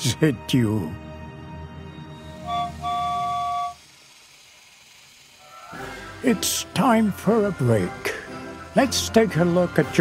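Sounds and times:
steam whistle blast: 2.2 - 4.2.

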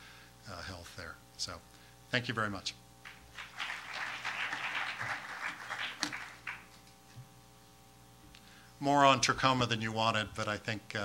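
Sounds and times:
audience applauding: 3.0 - 6.8.

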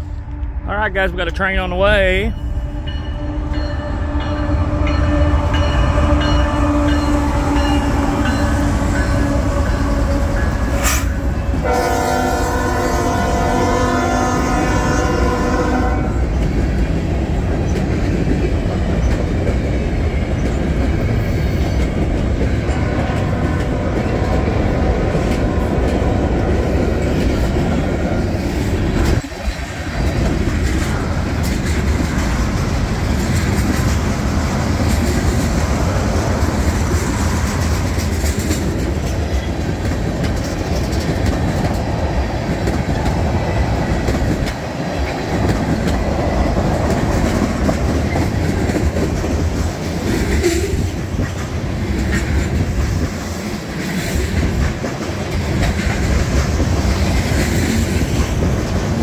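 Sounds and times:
train cars rumbling and clattering: 0.0 - 59.0
locomotive horn blast: 3.2 - 16.2.

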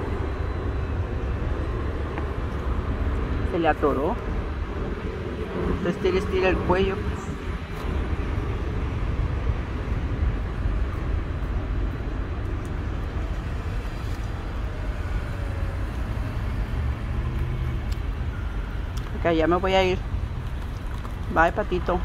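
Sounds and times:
low outdoor rumble: 0.0 - 22.0.

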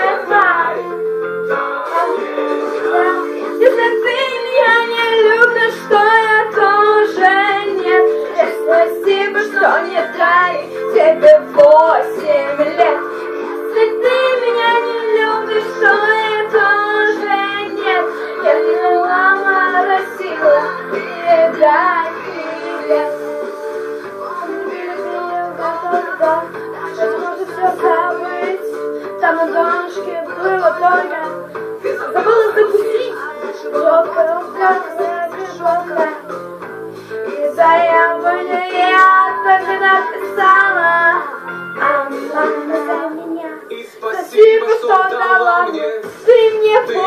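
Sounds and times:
girl singing pop song: 0.0 - 47.0
held backing chords: 0.0 - 47.0.

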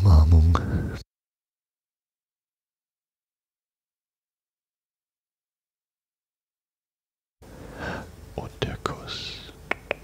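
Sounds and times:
close breathing: 7.4 - 8.2.

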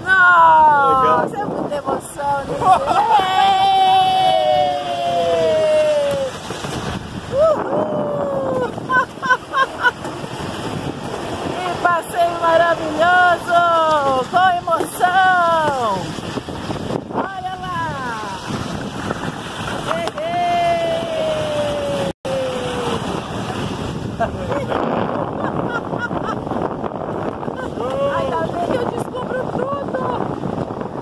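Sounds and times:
wind on microphone: 0.0 - 31.0
sled runners rushing on road: 2.5 - 17.2
people whooping excitedly: 2.6 - 6.4, 7.3 - 9.0, 20.0 - 23.0.

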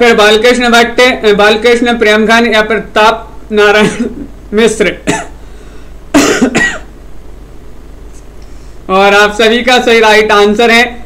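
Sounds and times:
man coughing: 3.8 - 4.3, 5.0 - 5.4, 6.1 - 6.9.

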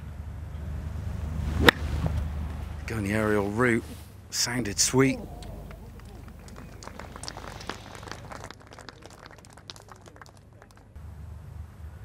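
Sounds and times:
people clapping: 5.0 - 11.0.

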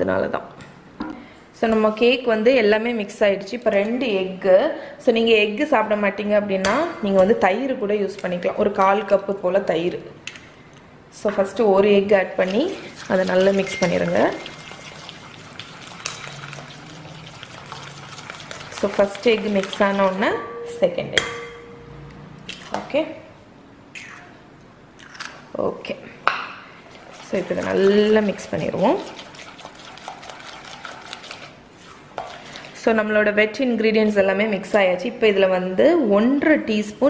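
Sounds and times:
spatula scraping glass bowl: 12.4 - 20.4, 26.9 - 32.8
spatula stirring wet batter: 12.4 - 20.4, 26.8 - 32.9.

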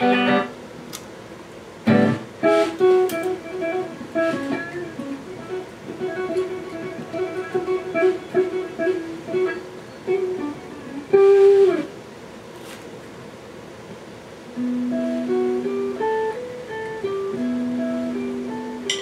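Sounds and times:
electric guitar through amplifier: 0.0 - 0.7, 1.8 - 12.0, 14.5 - 19.0.

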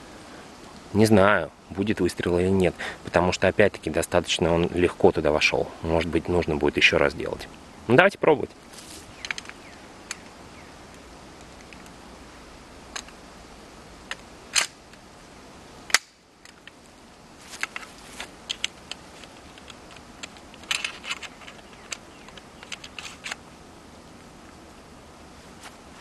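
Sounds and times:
gun action clicking and rattling: 9.2 - 10.2, 17.6 - 23.4.

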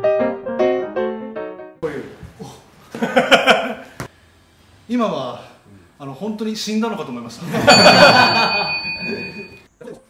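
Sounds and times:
men laughing loudly: 2.9 - 3.9, 7.4 - 9.4
bell-like chime: 7.6 - 9.7.

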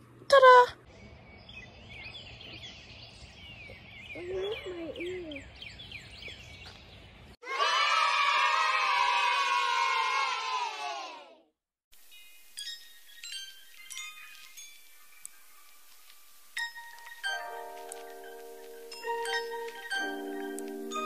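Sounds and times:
children cheering: 7.4 - 11.4
chiming mallet percussion music: 12.0 - 15.7, 16.6 - 21.0.

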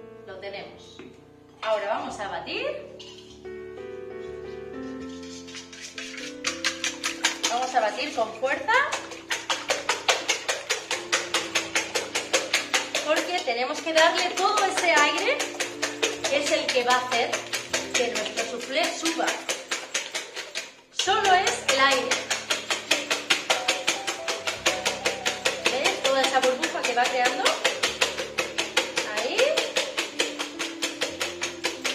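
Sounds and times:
whisk clicking in metal bowl: 4.9 - 31.9.

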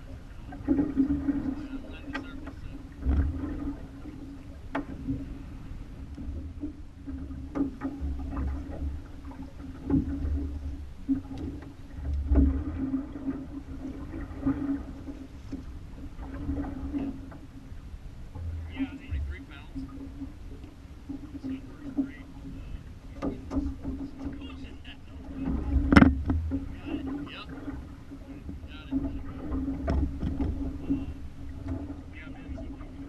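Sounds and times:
faint steady hum: 0.0 - 33.0
water slapping against hull: 0.0 - 33.0
wind rumbling on microphone: 0.0 - 33.0.

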